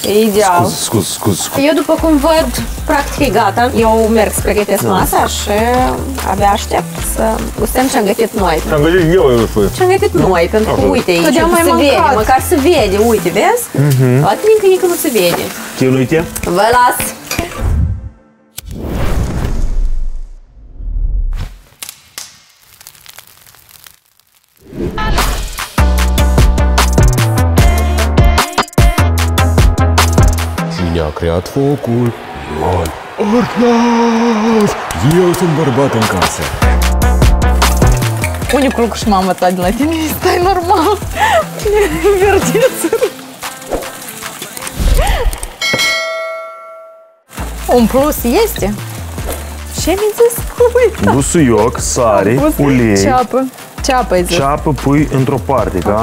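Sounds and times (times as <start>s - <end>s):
notification bell ding: 45.6s - 47.3s.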